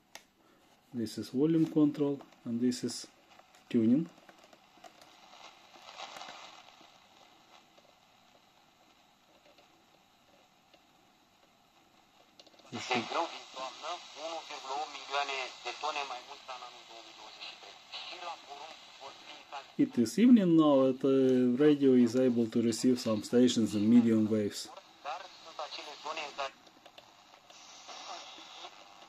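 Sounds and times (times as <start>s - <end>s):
radio static hiss: 0.0s - 29.0s.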